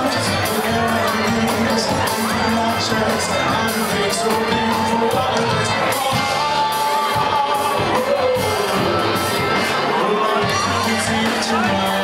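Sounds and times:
live band music: 0.0s - 12.0s
person singing: 0.0s - 12.0s.

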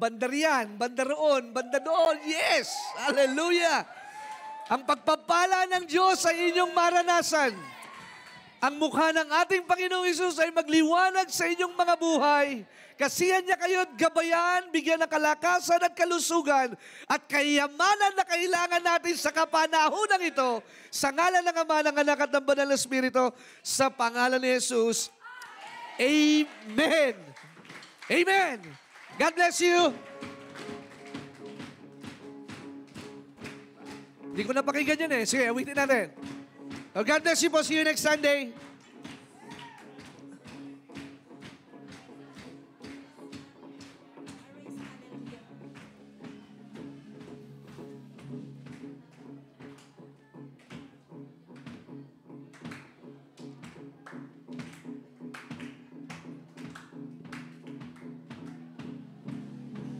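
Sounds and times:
electric guitar chords: 29.7s - 34.9s
soft band music guitar and bass: 29.7s - 39.4s, 53.4s - 59.9s.

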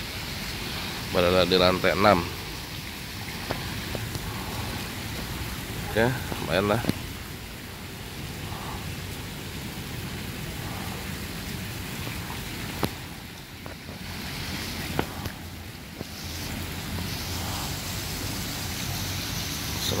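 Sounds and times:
water spouts splashing into pool: 0.0s - 20.0s.

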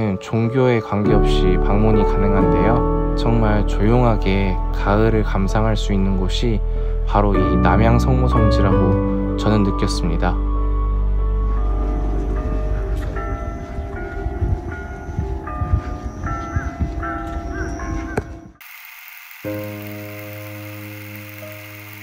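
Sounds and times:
soft background music: 0.0s - 18.6s, 19.5s - 22.0s
church bells ringing: 11.7s - 18.6s
wind rumble on microphone: 12.1s - 18.6s.

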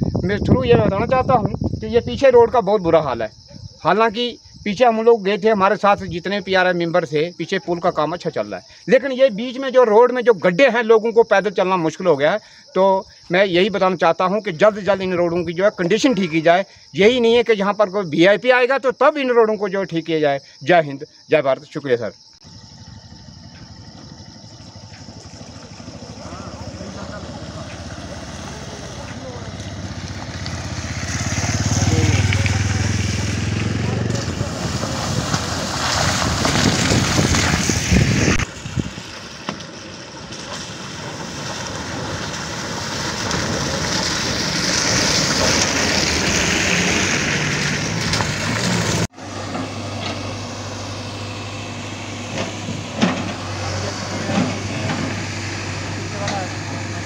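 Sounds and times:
motorcycle on rough dirt road: 22.4s - 57.0s
car driving through water: 23.8s - 57.0s.

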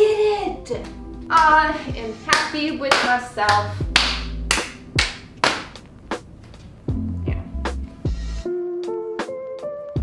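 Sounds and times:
quiet background music: 0.0s - 10.0s
sharp hand claps: 2.3s - 5.9s.

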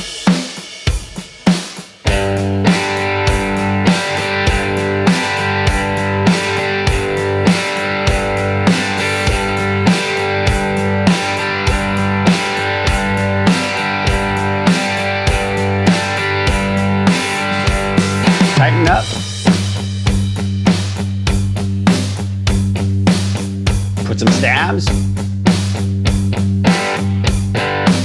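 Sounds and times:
drum kit groove: 0.0s - 28.0s
electric guitar strumming chords: 2.1s - 20.2s, 24.0s - 25.2s, 26.6s - 28.0s.

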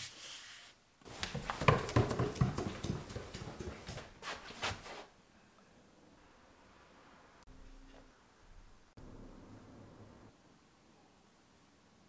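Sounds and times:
footsteps on wooden stairs: 1.1s - 4.8s.

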